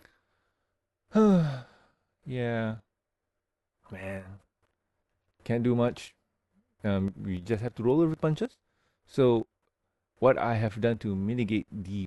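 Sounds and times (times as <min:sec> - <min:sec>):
man sighing: 0:01.1 - 0:02.0.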